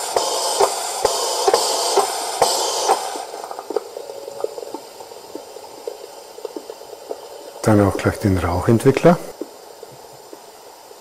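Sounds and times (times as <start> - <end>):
steam hiss from loudspeaker: 0.0 - 11.0.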